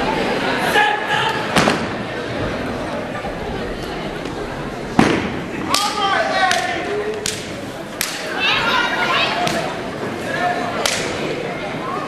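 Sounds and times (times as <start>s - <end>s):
gym crowd voices: 0.0s - 12.0s.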